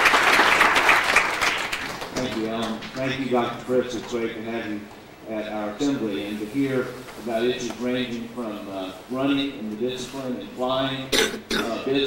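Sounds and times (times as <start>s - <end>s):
man speaking into microphone: 2.2s - 12.0s.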